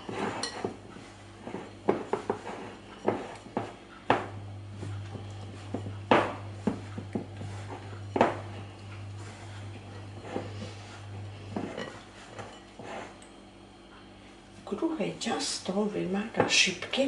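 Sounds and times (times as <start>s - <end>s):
hands kneading dough: 0.0s - 13.3s
low steady hum: 0.0s - 17.0s.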